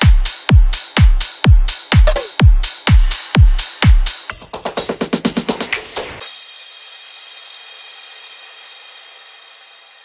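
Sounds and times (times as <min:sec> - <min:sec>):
club dance track: 0:00.0 - 0:06.4.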